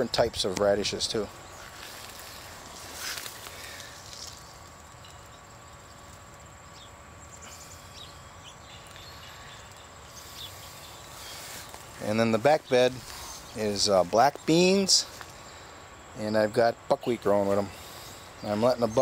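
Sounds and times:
faint insect drone: 0:00.0 - 0:19.0.

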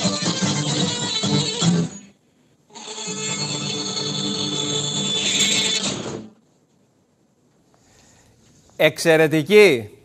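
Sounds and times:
folk tune on lute and bagpipe: 0:00.0 - 0:06.2.

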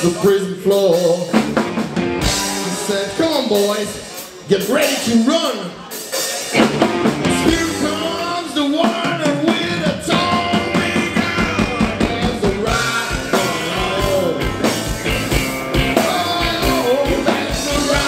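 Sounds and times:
bass guitar: 0:00.0 - 0:04.2, 0:06.5 - 0:18.0
electric guitars: 0:00.0 - 0:04.5, 0:05.8 - 0:18.0
drum kit beat: 0:00.0 - 0:18.0
lead vocal singing: 0:07.3 - 0:18.0.

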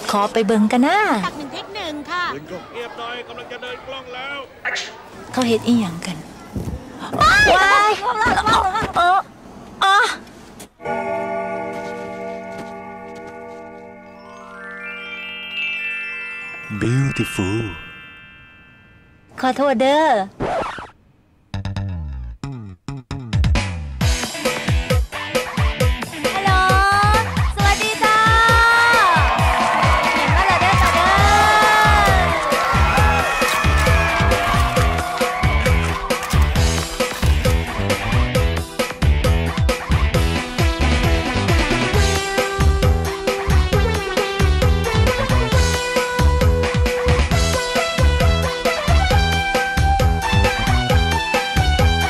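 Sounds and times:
electronic keyboard chord: 0:10.8 - 0:19.1
song with drum and bass beat: 0:23.1 - 0:52.0.

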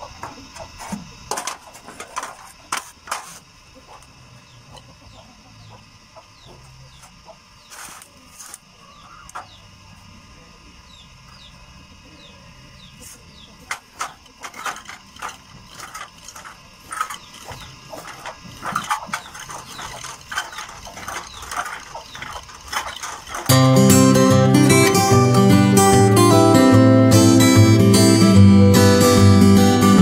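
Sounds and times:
hand pump drill clicking and scraping: 0:13.6 - 0:25.2
strummed acoustic guitar music: 0:16.4 - 0:30.0.

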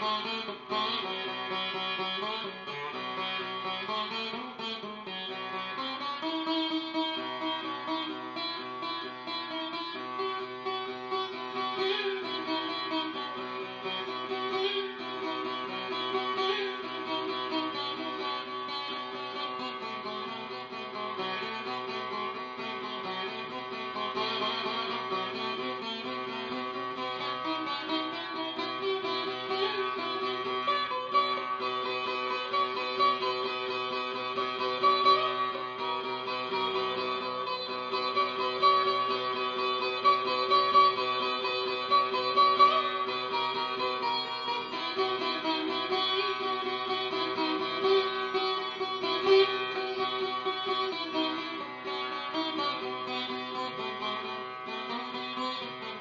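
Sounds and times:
sitar plucked notes: 0:00.0 - 0:56.0.

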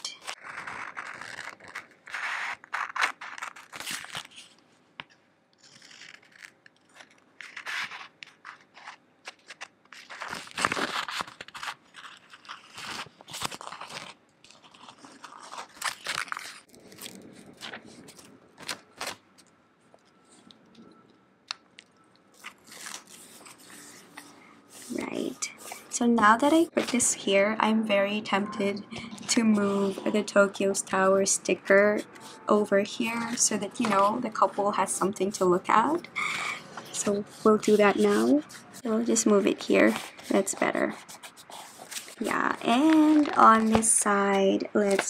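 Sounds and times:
fingers rubbing paper: 0:00.1 - 0:04.5, 0:05.6 - 0:18.8, 0:22.4 - 0:27.4, 0:29.3 - 0:44.4
paper sticker rustling and peeling: 0:00.1 - 0:04.6, 0:05.6 - 0:19.5, 0:21.8 - 0:27.1, 0:29.0 - 0:45.0.

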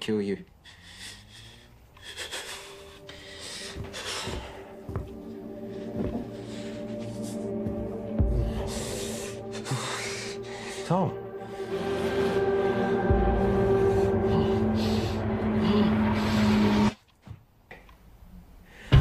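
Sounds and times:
heavy breathing: 0:00.4 - 0:17.0
sustained drone: 0:01.0 - 0:17.0.

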